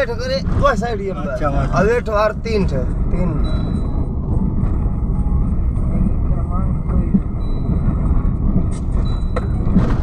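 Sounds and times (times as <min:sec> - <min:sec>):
vehicle rumble from on board: 0:00.0 - 0:10.0.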